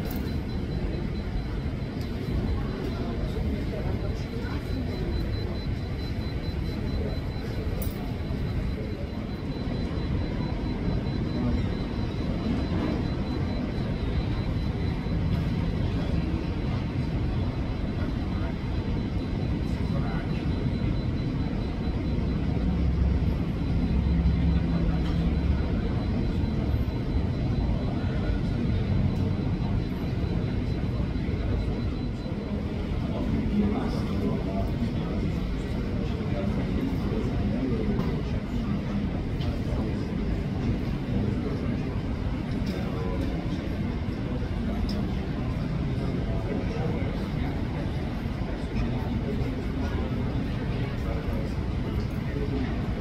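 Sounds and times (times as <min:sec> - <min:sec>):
muffled jet airliner rumble: 0:00.0 - 0:53.0
thin steady high tone: 0:00.0 - 0:53.0.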